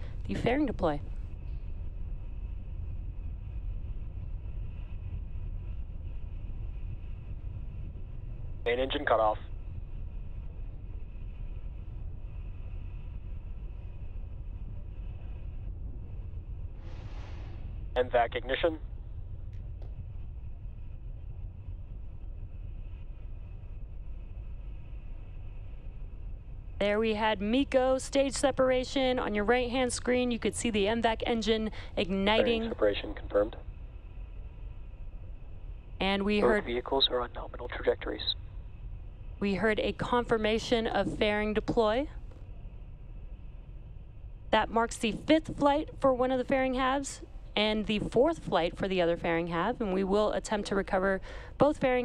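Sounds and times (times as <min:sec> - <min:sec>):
faint high whine: 0:00.0 - 0:52.0
rocket engines rumbling: 0:00.0 - 0:52.0.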